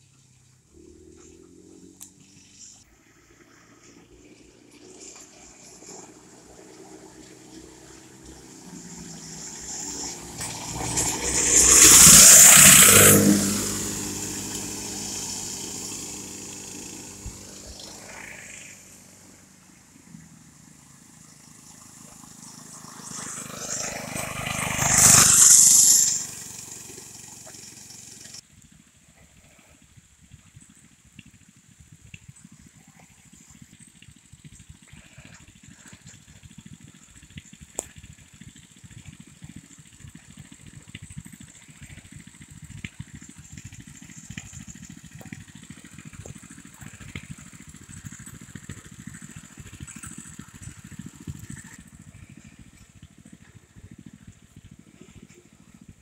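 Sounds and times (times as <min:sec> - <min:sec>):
mini bike engine passing: 0:00.0 - 0:56.0.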